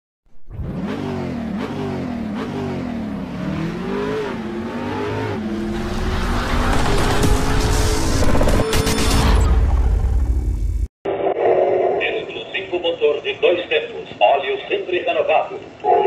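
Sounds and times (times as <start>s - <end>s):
car engine revving: 0.5s - 10.5s.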